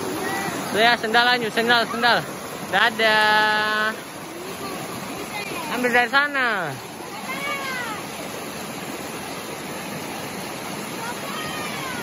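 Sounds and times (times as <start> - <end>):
stream rushing over boulders: 0.0 - 12.0.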